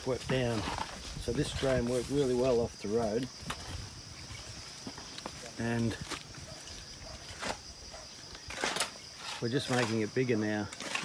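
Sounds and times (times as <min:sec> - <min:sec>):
shovel scraping into soil: 0:07.2 - 0:11.0.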